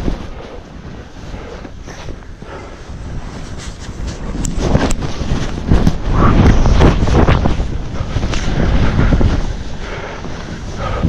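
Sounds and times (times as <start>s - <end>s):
skis ploughing through snow: 0.0s - 11.0s
wind buffeting microphone: 0.0s - 11.0s.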